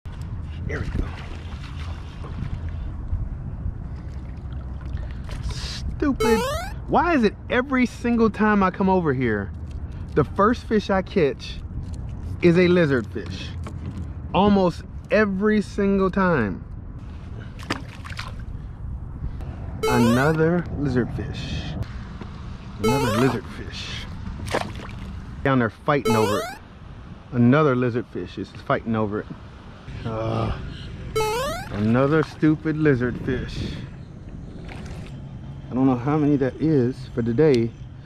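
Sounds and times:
wind rumbling on microphone: 0.1 - 6.0, 30.9 - 35.7
loud pitched sound: 6.2 - 6.8, 19.8 - 20.4, 22.8 - 23.4, 26.1 - 26.6, 31.2 - 31.8.

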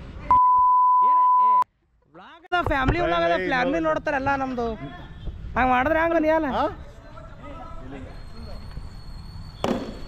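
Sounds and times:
cricket bat striking ball: 9.6 - 10.0.

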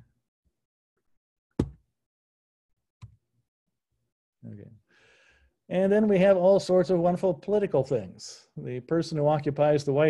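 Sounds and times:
sharp tap on computer: 1.6 - 1.8.

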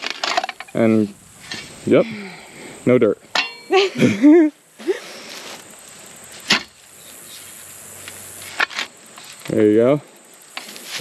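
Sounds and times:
post hole digger striking rocky soil: 6.4 - 6.8.

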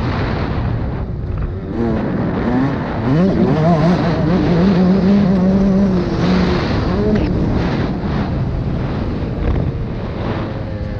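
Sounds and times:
dirt bike engine revving: 1.3 - 10.9.

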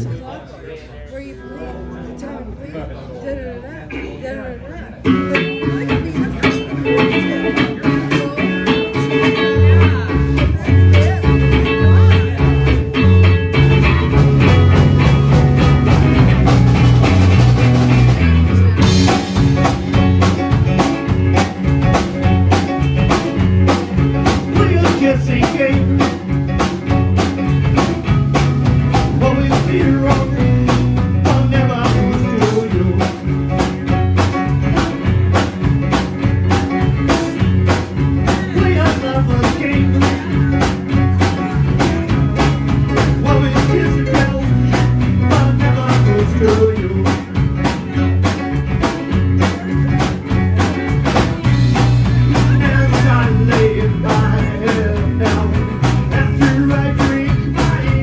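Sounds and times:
bass guitar: 0.0 - 0.4, 1.1 - 58.0
keyboard: 0.0 - 58.0
electric guitar: 4.9 - 58.0
drum kit: 5.1 - 58.0.

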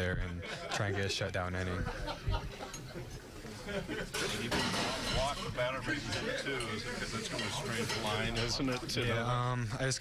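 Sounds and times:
indistinct background voices: 2.0 - 9.8.

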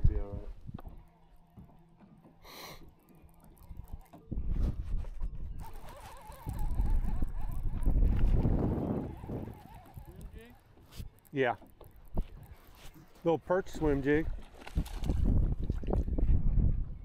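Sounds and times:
wind gusting on microphone: 4.3 - 10.5, 13.7 - 17.0.

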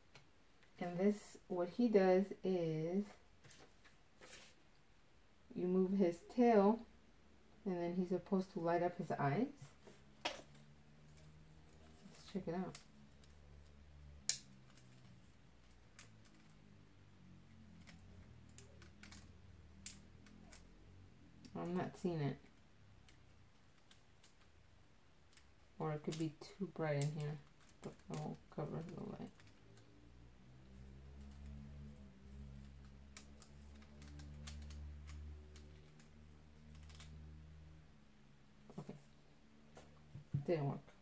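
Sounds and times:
faint low room hum: 0.0 - 41.0
plastic toy clicks: 32.6 - 37.1.

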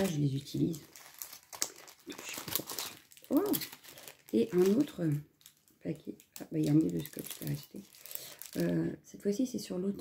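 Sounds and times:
paper packet crinkling: 0.0 - 8.9.

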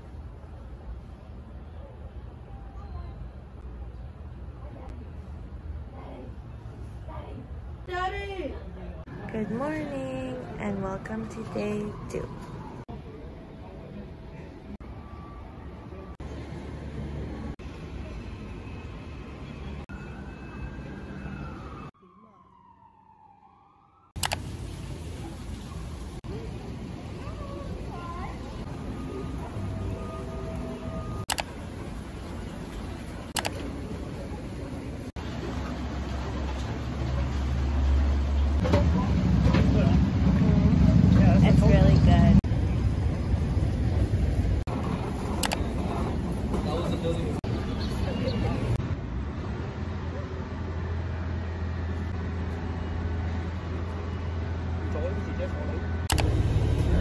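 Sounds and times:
distant siren wailing: 10.4 - 12.9, 14.8 - 16.3, 18.3 - 24.2, 27.2 - 31.3
outdoor background rumble: 24.1 - 57.0
low rumble: 56.1 - 57.0.

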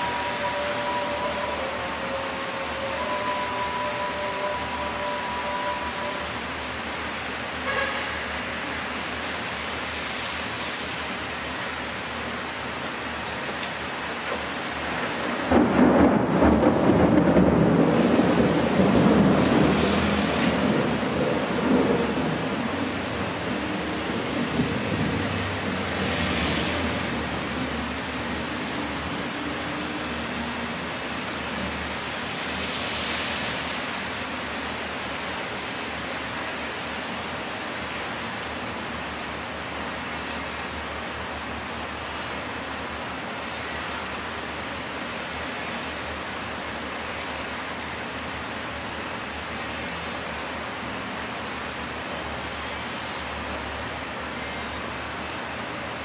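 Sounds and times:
steady rushing noise: 6.3 - 54.6.

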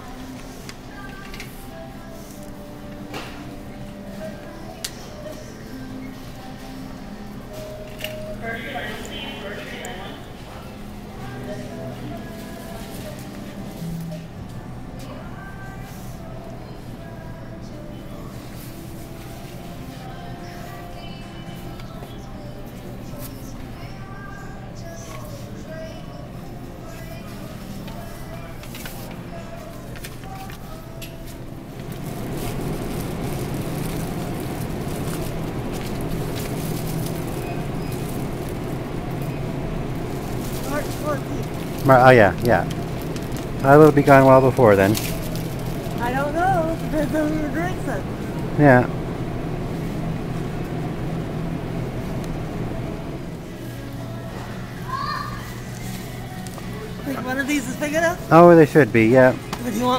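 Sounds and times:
faint background music: 0.0 - 59.9
low electrical hum: 0.0 - 59.9
low rumble and hiss: 0.0 - 59.9.

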